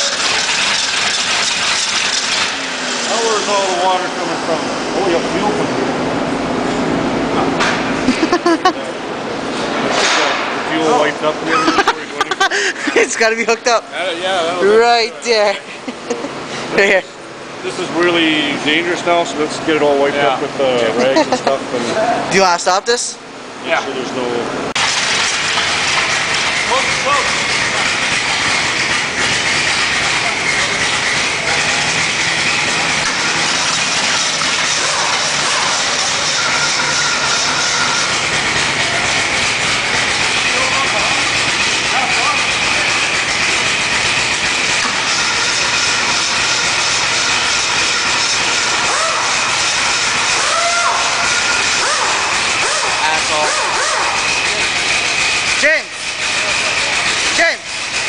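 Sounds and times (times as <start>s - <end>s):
unmuffled engine running: 0.0s - 9.6s, 24.7s - 58.0s.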